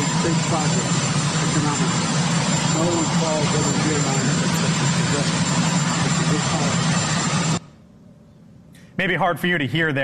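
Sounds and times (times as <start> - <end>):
helicopter engine and rotor: 0.0 - 7.8
thin high whine: 0.0 - 8.2.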